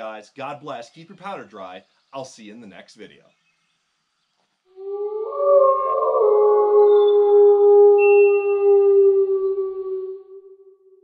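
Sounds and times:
sustained chord of held tones: 4.8 - 11.0.

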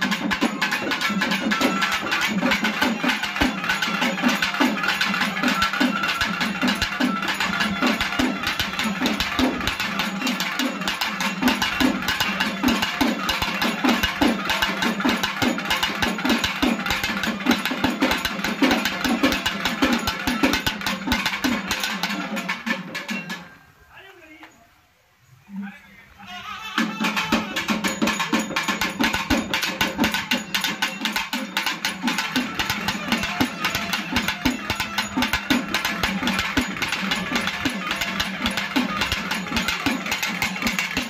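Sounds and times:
folk drums beaten with sticks: 0.0 - 23.6, 26.3 - 41.0.

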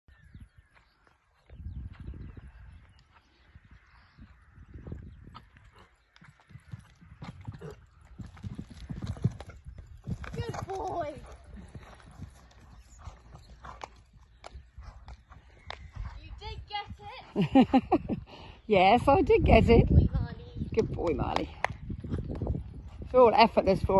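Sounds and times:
horse hoofbeats cantering: 5.3 - 18.2.

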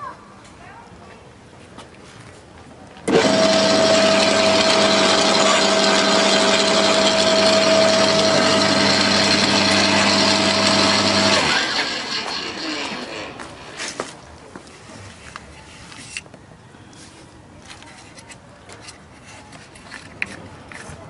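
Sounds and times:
garden shredder motor with gear whine: 3.1 - 13.8.

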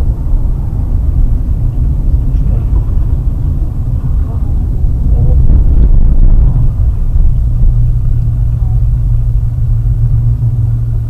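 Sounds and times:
car driving on snowy road: 0.0 - 11.0.

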